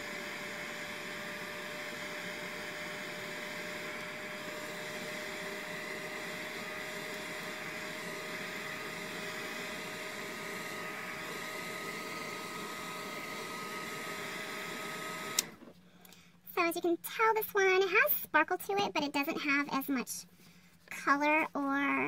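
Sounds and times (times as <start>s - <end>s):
hot-air blower running: 0.0s - 15.9s.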